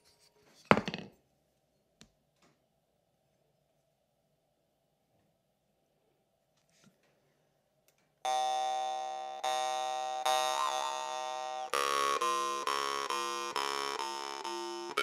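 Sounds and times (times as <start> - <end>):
jaw harp buzzing drone: 8.3 - 15.0.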